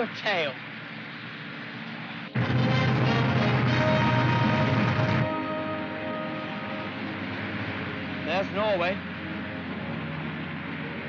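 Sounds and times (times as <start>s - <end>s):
aircraft engines droning: 0.0s - 11.0s
orchestral music: 2.4s - 7.6s.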